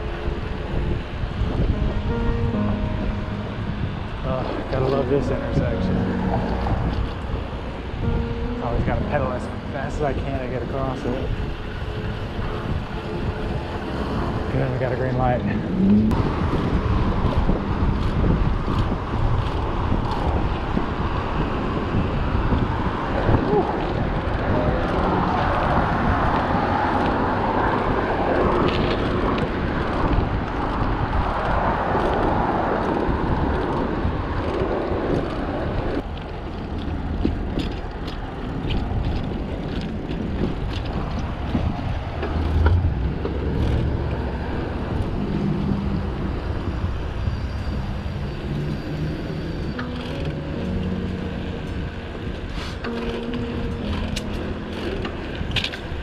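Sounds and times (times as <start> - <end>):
car traffic: 0.0 - 56.0
tyre and road noise: 0.0 - 56.0
wind rushing over microphone: 0.0 - 56.0
bicycle clicks and rattles: 16.5 - 21.0, 28.4 - 44.2, 49.7 - 50.4, 53.9 - 56.0.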